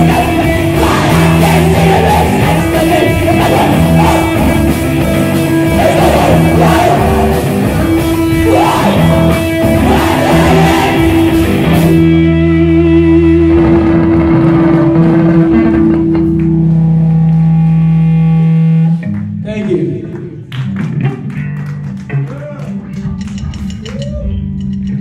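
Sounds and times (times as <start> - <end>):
bass guitar: 0.0 - 25.0
drums: 0.0 - 25.0
electric guitars: 0.0 - 25.0.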